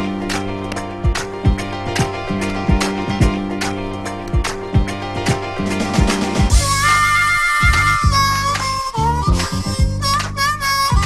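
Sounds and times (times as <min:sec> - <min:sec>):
rap beat of bass and drums: 0:00.0 - 0:11.0
harmonica playing: 0:05.8 - 0:11.0.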